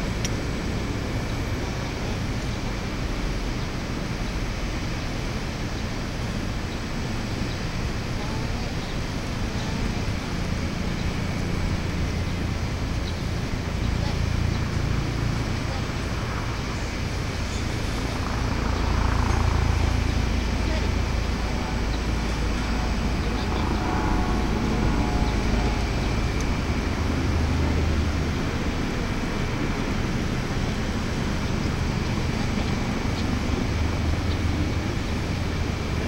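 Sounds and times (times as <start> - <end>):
distant traffic rumble: 0.0 - 36.0
faint distant voices: 0.6 - 36.0
air movement: 14.4 - 28.4.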